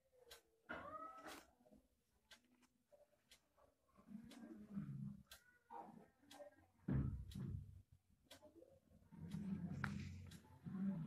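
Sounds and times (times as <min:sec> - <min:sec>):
faint animal cry: 0:00.7 - 0:01.5.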